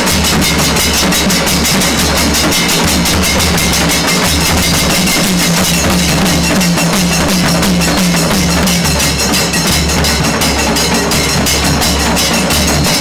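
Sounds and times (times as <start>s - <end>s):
fast stick-beaten drumming: 0.0s - 13.0s
hand cymbals: 0.0s - 13.0s.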